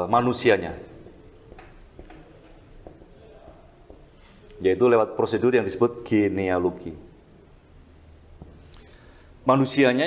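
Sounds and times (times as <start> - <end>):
low room hum: 0.0 - 10.0
marker tapping on whiteboard: 1.0 - 4.2.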